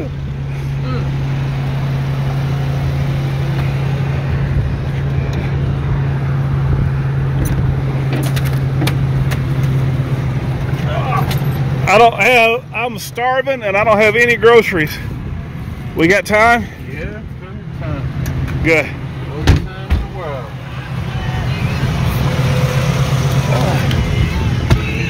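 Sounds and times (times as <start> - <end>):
car engine idling: 0.0 - 25.0.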